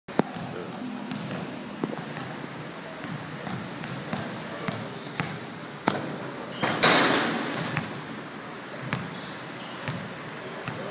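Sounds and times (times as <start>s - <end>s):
basketball bouncing on court: 0.2s - 2.4s, 3.0s - 6.7s, 7.4s - 8.0s, 8.8s - 10.9s.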